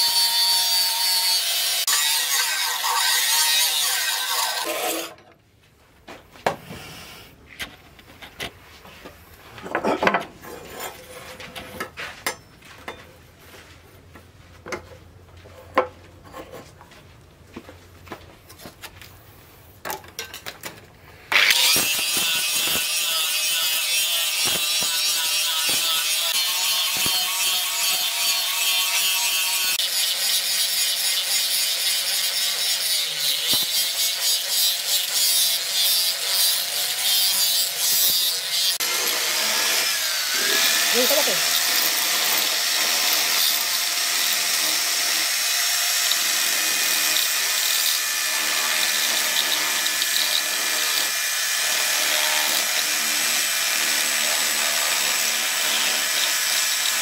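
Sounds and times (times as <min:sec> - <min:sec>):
angle grinder grinding steel: 0:00.0 - 0:05.2, 0:21.3 - 0:57.0
die grinder high-pitched whine: 0:21.3 - 0:57.0.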